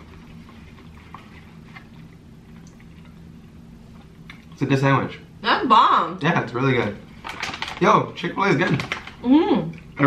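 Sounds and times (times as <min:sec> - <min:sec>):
chewing food: 0:00.0 - 0:04.6.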